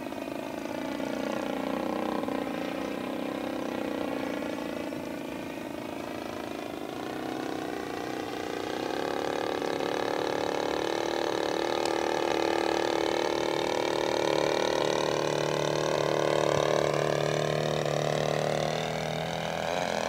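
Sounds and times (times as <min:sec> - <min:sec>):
model plane engine in flight: 0:00.0 - 0:20.0.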